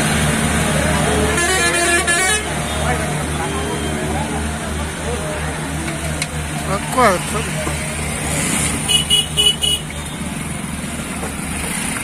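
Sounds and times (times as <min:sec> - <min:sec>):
tractor diesel engines chugging: 0:00.0 - 0:12.0.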